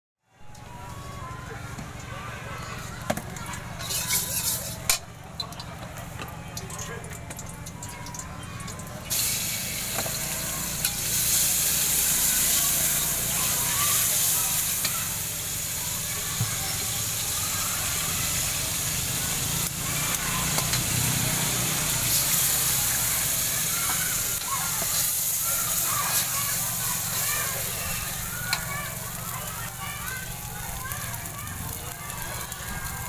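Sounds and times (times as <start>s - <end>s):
faint voices: 0.3s - 33.0s
oil sizzling in a wok: 0.6s - 33.0s
egg frying and scrambled: 2.8s - 5.8s, 7.2s - 33.0s.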